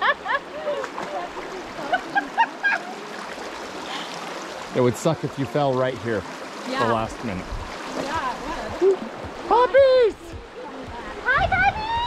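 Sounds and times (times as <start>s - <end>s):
creek water running: 0.0s - 12.0s
people wading through water: 0.0s - 12.0s.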